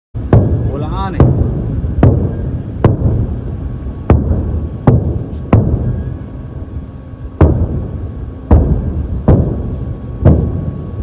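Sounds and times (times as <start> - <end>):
distant explosion booms: 0.2 - 6.2, 7.4 - 11.0
continuous low rumble: 0.2 - 11.0.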